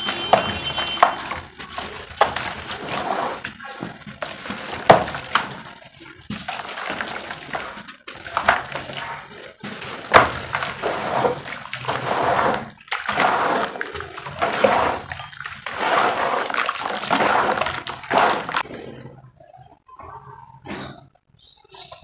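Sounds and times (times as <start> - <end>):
hands sloshing muddy water: 0.0 - 18.7
small quiet splashes: 3.4 - 18.7.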